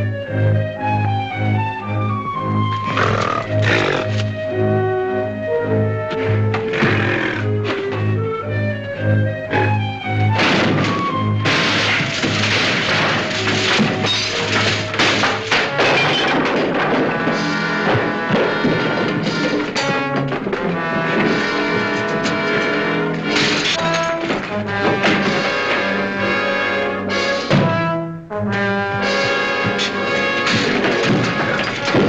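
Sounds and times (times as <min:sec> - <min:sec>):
dramatic orchestral music: 0:00.0 - 0:32.0
loud crashes and thuds: 0:09.5 - 0:26.6, 0:28.9 - 0:32.0.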